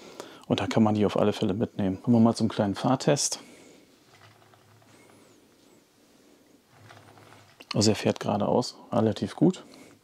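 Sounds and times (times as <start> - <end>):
toy truck rolling on wood: 4.1 - 5.1, 6.7 - 8.0.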